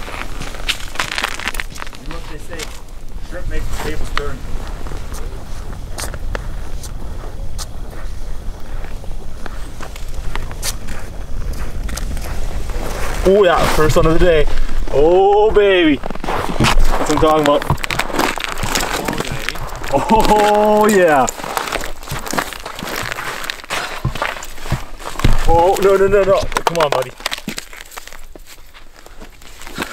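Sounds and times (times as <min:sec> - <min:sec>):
wind rumble on microphone: 0:00.0 - 0:26.6
light crunches: 0:00.0 - 0:29.9
sharp knocks on ice: 0:16.3 - 0:28.1.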